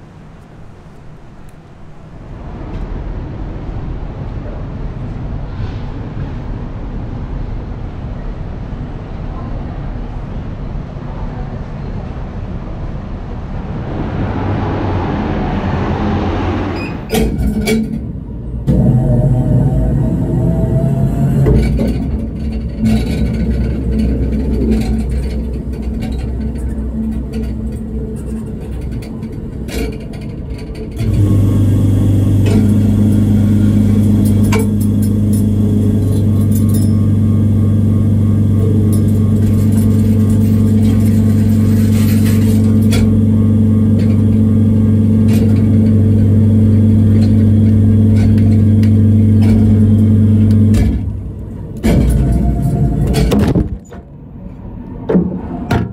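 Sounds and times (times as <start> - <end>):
machine low hum: 12.1 - 55.7
vending machine whirring and clicks: 16.8 - 55.9.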